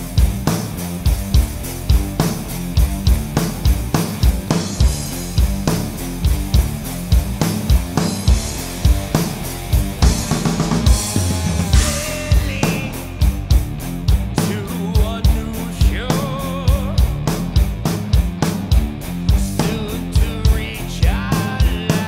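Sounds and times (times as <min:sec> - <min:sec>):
distorted electric guitar: 0:00.0 - 0:22.0
drum kit playing: 0:00.0 - 0:22.0
heavy rock band recording: 0:00.0 - 0:22.0.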